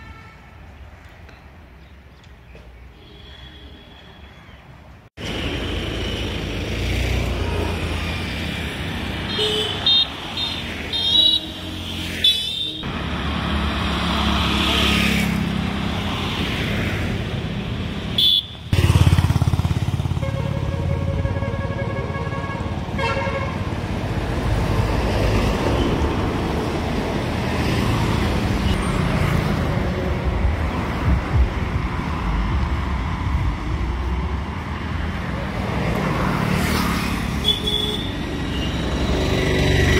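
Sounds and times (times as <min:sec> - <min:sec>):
motorcycles and cars passing: 0:05.2 - 0:39.9.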